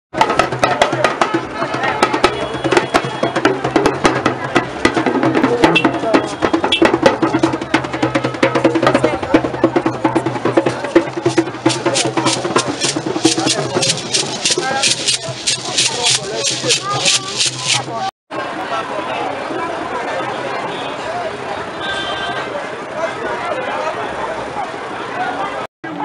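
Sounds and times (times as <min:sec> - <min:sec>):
rapid drum strokes: 0:00.2 - 0:18.1
crowd voices: 0:00.2 - 0:26.0.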